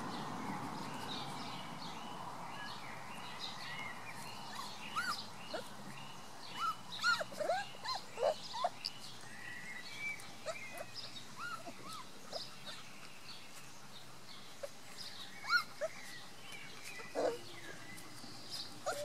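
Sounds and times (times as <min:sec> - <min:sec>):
puppies squeaking and whining: 0:04.4 - 0:05.8, 0:06.5 - 0:09.2, 0:09.8 - 0:13.0, 0:14.5 - 0:19.0.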